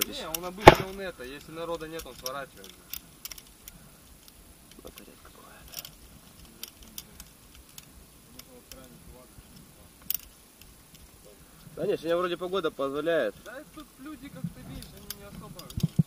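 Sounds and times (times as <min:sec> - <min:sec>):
light sharp clicks: 0:13.4 - 0:16.0.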